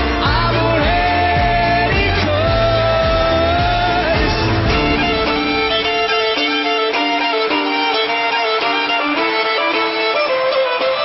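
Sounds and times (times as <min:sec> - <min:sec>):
bass and drums: 0:00.0 - 0:06.2
violin melody: 0:00.0 - 0:11.0.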